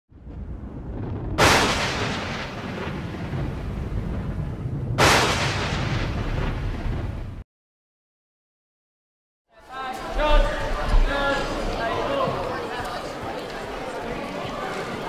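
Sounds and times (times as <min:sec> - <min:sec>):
low rumble: 0:00.1 - 0:07.4
heavy explosion-like hits: 0:00.2 - 0:07.4.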